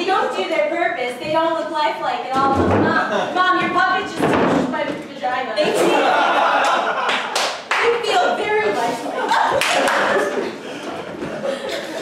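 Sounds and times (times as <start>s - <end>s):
voices: 0.0s - 7.1s, 7.7s - 12.0s
audience clapping: 6.6s - 8.1s, 9.3s - 10.6s.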